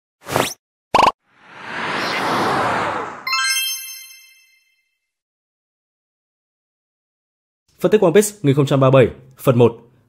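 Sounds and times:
whoosh: 1.3s - 3.3s.

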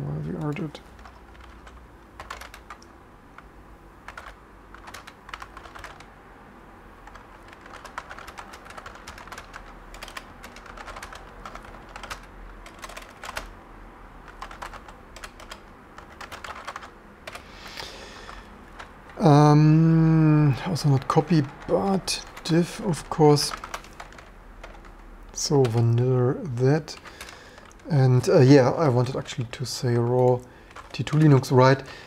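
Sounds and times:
typing on computer keyboard: 0.3s - 6.1s, 7.0s - 13.6s, 14.2s - 19.5s, 20.6s - 31.9s.

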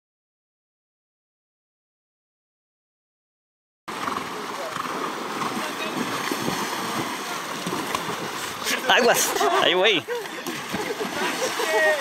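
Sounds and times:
horses splashing through water: 3.9s - 12.0s.

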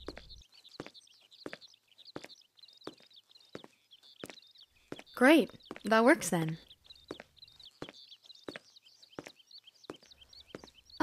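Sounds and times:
birds chirping: 0.0s - 11.0s
faint footsteps walking: 0.0s - 11.0s.

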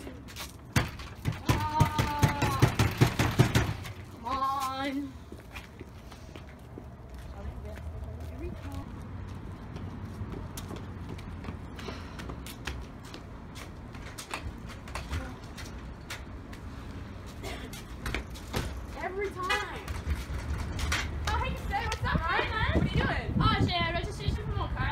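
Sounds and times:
footsteps on pavement: 0.0s - 24.5s.

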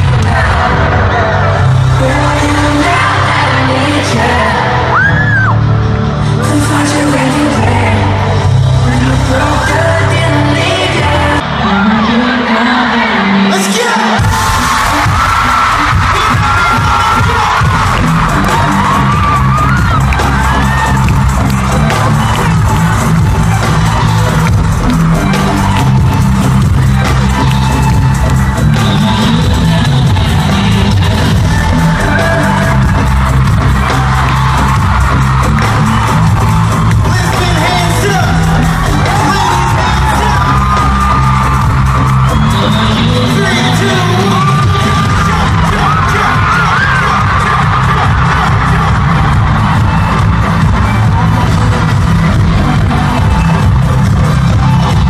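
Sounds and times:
person singing: 0.0s - 50.2s
crowd cheering and screaming: 0.0s - 55.0s
heavy bassline: 0.0s - 55.0s
live pop concert music: 0.0s - 55.0s.

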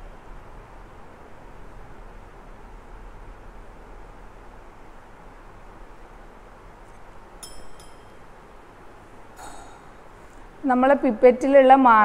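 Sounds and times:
room tone hiss and hum: 0.0s - 12.0s
glass clinking on glass: 7.4s - 8.3s.

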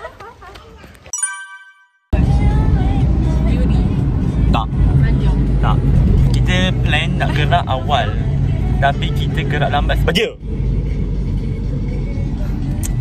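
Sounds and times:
car interior engine rumble: 2.2s - 13.0s.

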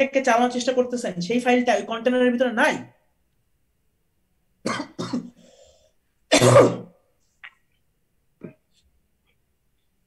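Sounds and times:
person coughing: 4.6s - 5.4s, 6.3s - 7.0s.

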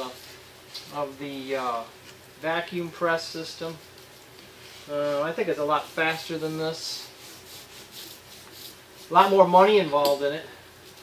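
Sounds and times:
hand roller rubbing on veneer: 4.6s - 9.6s.

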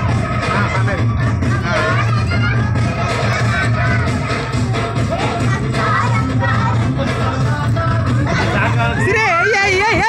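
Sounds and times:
mixed chatter: 0.0s - 10.0s.

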